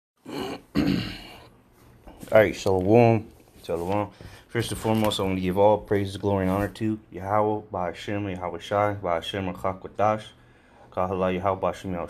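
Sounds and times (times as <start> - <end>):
man clearing his throat: 0.2 - 1.5.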